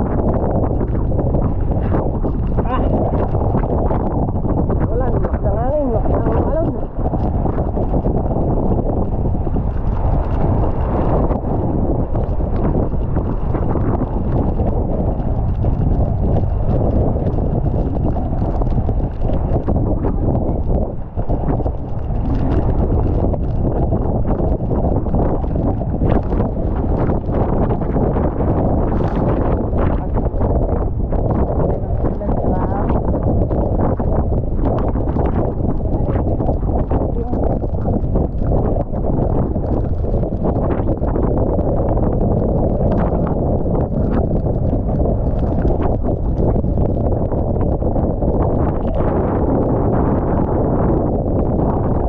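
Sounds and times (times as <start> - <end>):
waves splashing against hull: 0.0 - 50.5
wind buffeting microphone: 0.0 - 52.0.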